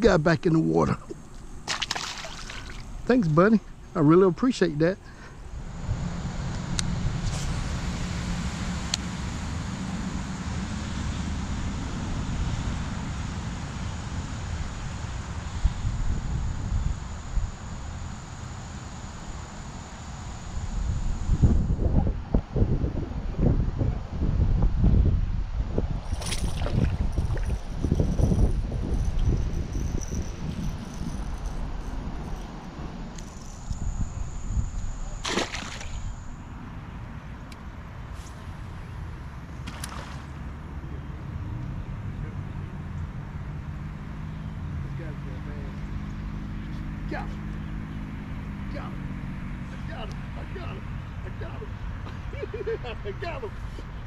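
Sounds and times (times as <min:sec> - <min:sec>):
wind buffeting microphone: 0:20.7 - 0:36.1.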